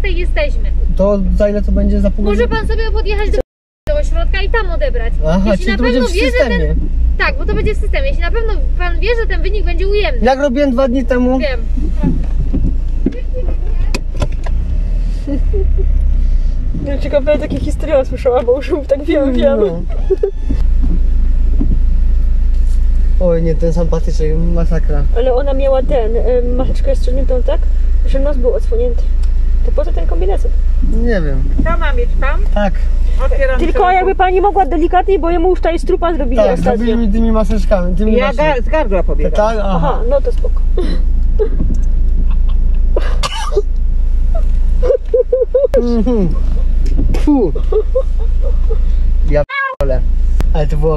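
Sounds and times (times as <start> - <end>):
car engine rumble inside cabin: 0.0 - 50.9
person coughing and gagging: 43.0 - 43.7
choked vocal sounds: 44.4 - 46.5.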